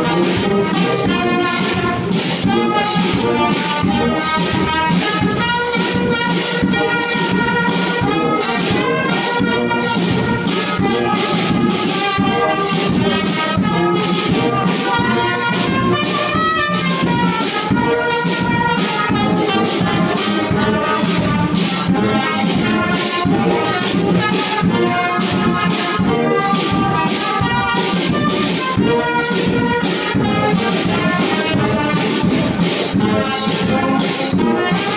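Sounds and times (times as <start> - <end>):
bass drum and side drum beat: 0.0 - 34.9
trumpets and tuba playing: 0.0 - 34.9.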